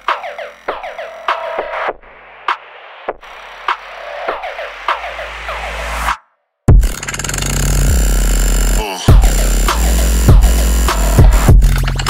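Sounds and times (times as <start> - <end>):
electronic noise music: 0.0 - 6.9, 7.8 - 11.7.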